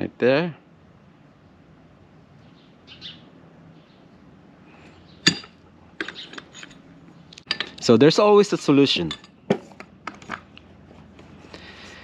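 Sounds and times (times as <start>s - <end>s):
metal tools clicking and clinking: 5.2s - 8.0s, 8.8s - 10.5s.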